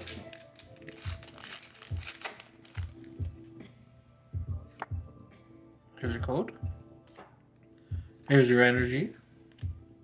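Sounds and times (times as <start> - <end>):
foil wrapper crinkling: 0.0 - 3.2
background music with steady beat: 0.0 - 10.0.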